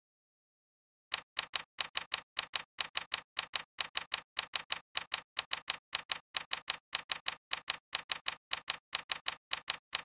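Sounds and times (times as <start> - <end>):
typing key clicks: 1.1 - 10.0.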